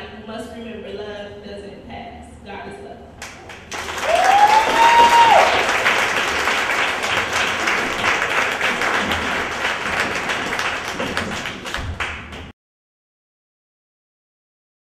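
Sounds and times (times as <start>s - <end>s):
audience applauding: 3.2s - 12.5s
person whooping: 4.0s - 5.7s.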